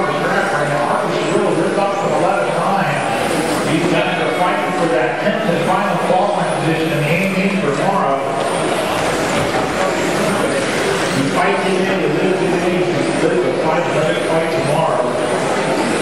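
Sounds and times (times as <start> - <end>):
race announcer talking: 0.0 - 8.6, 11.1 - 15.3
electric rc cars whining: 0.1 - 16.0.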